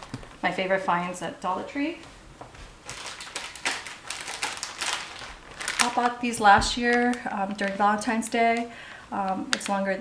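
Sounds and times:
plastic packaging crinkling: 2.8s - 10.0s.

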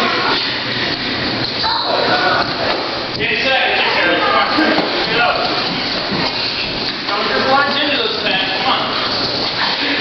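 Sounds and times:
indistinct voices in a hall: 0.0s - 10.0s.

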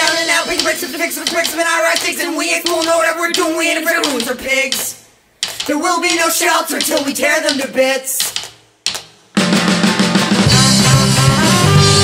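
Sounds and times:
person singing or shouting: 0.0s - 4.9s
sharp click: 0.6s - 7.6s, 8.2s - 9.1s.

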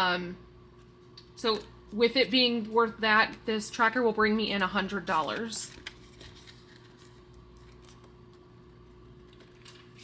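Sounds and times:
low steady hum: 0.0s - 10.0s
plastic envelopes and paper rustling: 4.8s - 8.5s, 9.2s - 10.0s.

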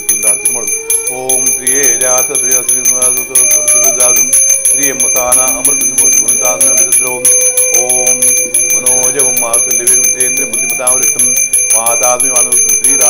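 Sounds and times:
hand bell ringing rapidly: 0.0s - 13.0s
voices singing: 0.0s - 13.0s.

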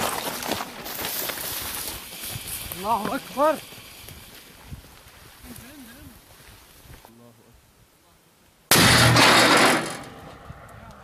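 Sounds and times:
cannon firing: 8.7s - 10.4s.

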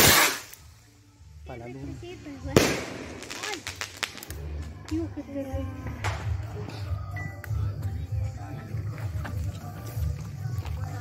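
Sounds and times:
firework bang: 0.0s - 0.5s, 2.5s - 4.4s.

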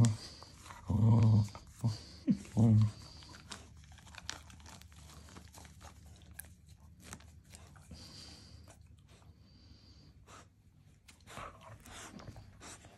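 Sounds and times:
low hummed voice sounds: 0.0s - 3.5s
toy crinkling: 2.4s - 8.0s.

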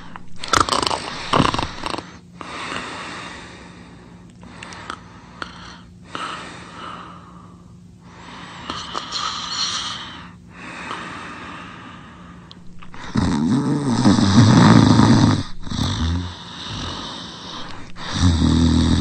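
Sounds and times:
person snoring: 0.0s - 3.6s, 12.6s - 19.0s
breathy breaths: 0.0s - 19.0s.

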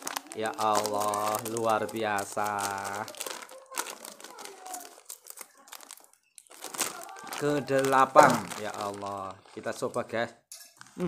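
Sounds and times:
plastic snack packet crinkling: 0.0s - 10.2s.

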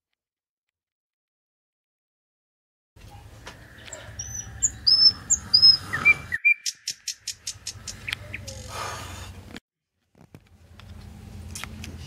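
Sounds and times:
small birds chirping: 3.0s - 9.0s.

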